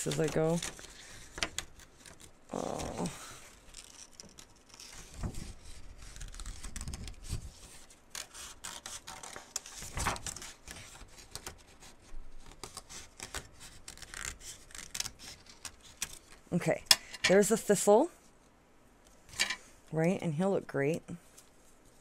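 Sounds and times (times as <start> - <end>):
scissors snipping paper: 0.0 - 16.2
paper rustling: 0.0 - 16.4.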